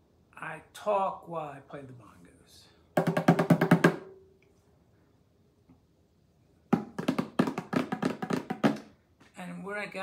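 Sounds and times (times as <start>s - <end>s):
bongos played with hands: 3.0s - 4.3s, 6.7s - 9.0s.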